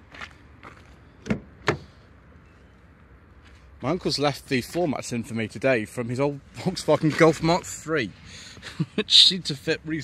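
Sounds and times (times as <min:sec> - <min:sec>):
car door clunks: 0:01.2 - 0:01.9
light steps or rustles: 0:01.8 - 0:05.3, 0:06.6 - 0:07.9.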